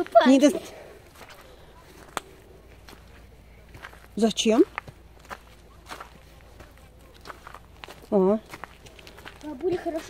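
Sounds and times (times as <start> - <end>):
footsteps on muddy path: 0.0 - 10.0.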